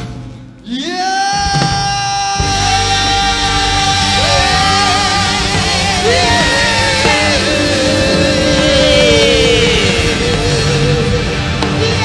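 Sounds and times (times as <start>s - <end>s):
pop band with drums and bass: 0.0s - 12.0s.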